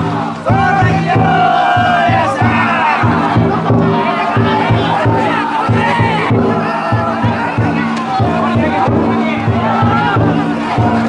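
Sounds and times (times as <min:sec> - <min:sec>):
men shouting and chanting: 0:00.0 - 0:11.0
taiko drum beating: 0:00.0 - 0:11.0.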